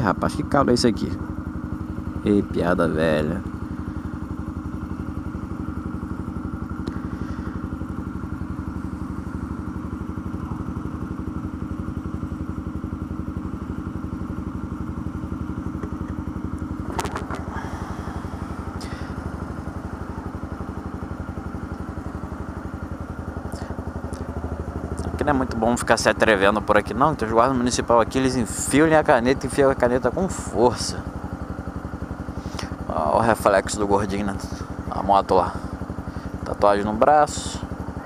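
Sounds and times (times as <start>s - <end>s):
motorcycle engine idling: 0.0s - 38.0s.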